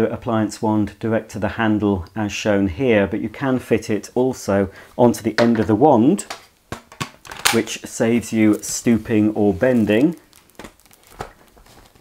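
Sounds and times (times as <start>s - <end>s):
plastic clicks and rustles: 6.3s - 7.7s, 9.9s - 12.0s.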